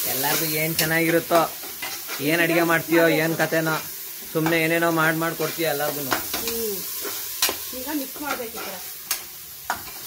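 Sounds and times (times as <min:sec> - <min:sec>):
paste sizzling in hot oil: 0:00.0 - 0:10.0.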